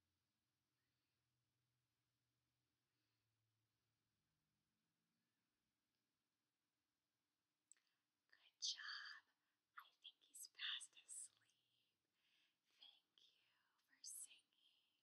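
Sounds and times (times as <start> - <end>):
woman whispering: 8.3 - 11.8, 12.7 - 15.0.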